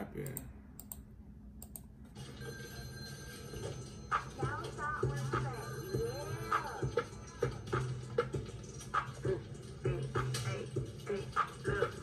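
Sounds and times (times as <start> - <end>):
scattered clicks: 0.2 - 1.0, 1.6 - 1.9
telephone ringing with electronic trill: 2.1 - 9.2.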